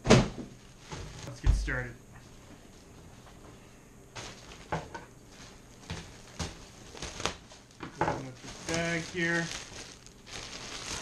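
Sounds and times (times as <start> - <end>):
plastic wrapping crinkling: 0.6 - 1.4, 4.1 - 11.0.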